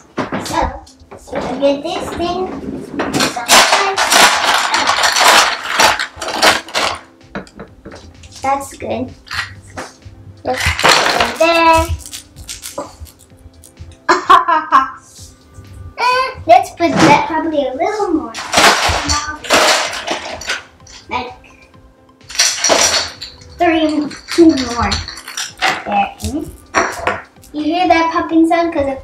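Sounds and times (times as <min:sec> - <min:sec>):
music: 0:00.0 - 0:29.0
child's voice: 0:00.4 - 0:02.6, 0:03.2 - 0:04.2, 0:10.4 - 0:12.0, 0:16.0 - 0:19.5, 0:21.1 - 0:21.7, 0:23.6 - 0:25.1, 0:27.5 - 0:29.0
ice cubes and dishes clattering: 0:03.2 - 0:08.0, 0:10.5 - 0:13.2, 0:18.4 - 0:21.1, 0:22.3 - 0:27.3.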